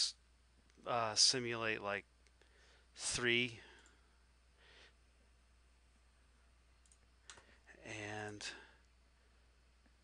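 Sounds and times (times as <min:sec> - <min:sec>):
computer mouse clicks: 0:06.8 - 0:07.5
low hummed voice: 0:07.7 - 0:08.8.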